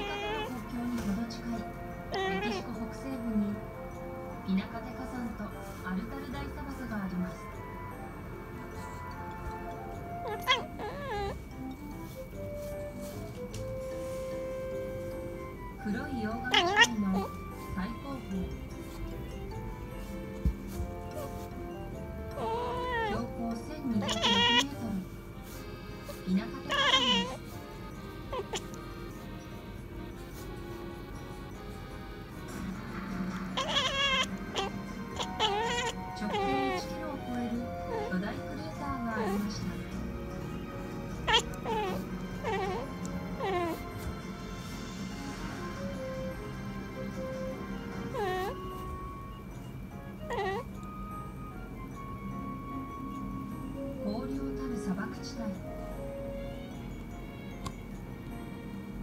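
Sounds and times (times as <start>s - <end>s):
kitten chattering: 0.0s - 0.7s, 1.6s - 4.0s, 8.6s - 13.2s, 14.9s - 44.3s, 47.4s - 51.2s
background music with held tones: 0.0s - 59.0s.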